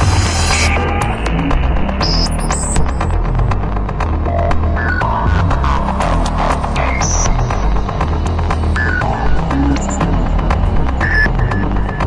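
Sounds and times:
electronic music with pulsing bass: 0.0s - 12.0s.

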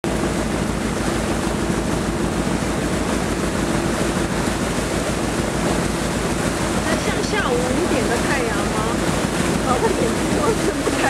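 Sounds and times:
boat engine throbbing: 0.0s - 11.0s
water rushing in wake: 0.0s - 11.0s
wind buffeting microphone: 0.1s - 11.0s.

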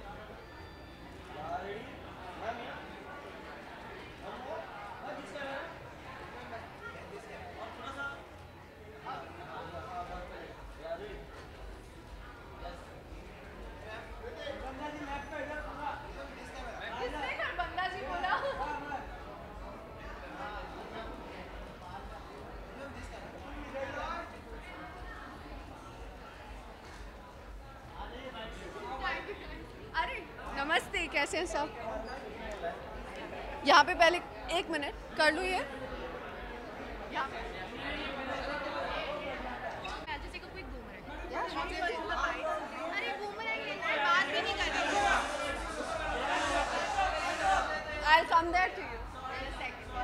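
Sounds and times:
overlapping voices chattering: 0.0s - 50.0s.

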